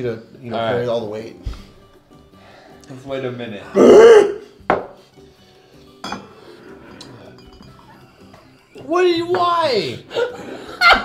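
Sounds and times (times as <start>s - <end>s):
glass and can clinking: 6.0s - 6.4s, 7.0s - 7.9s
person laughing: 10.1s - 11.0s.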